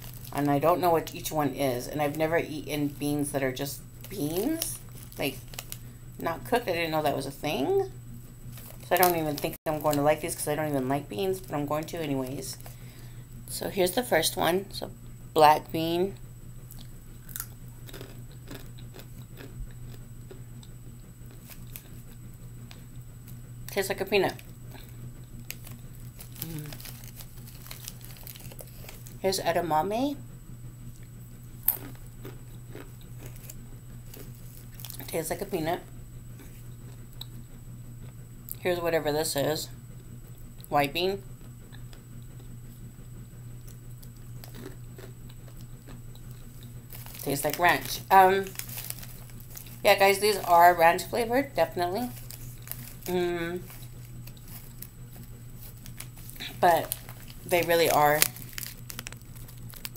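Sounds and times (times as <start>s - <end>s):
person chewing crunchy bean: 0.0s - 0.9s, 4.0s - 5.9s, 16.7s - 23.4s, 24.3s - 29.2s, 31.0s - 35.1s, 43.6s - 50.6s, 52.0s - 59.9s
steady low hum: 0.0s - 59.9s.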